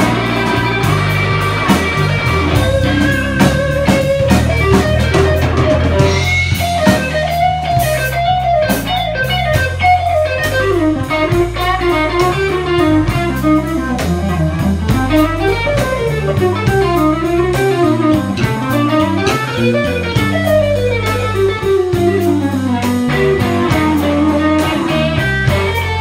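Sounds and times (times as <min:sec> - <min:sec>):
bass line: 0:00.0 - 0:26.0
drums: 0:00.0 - 0:26.0
electric guitar lead with bends: 0:00.0 - 0:26.0.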